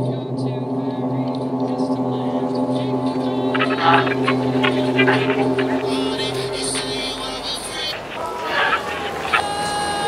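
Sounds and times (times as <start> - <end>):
hip-hop beat percussion: 0.0 - 10.0
low droning chord: 0.0 - 10.0.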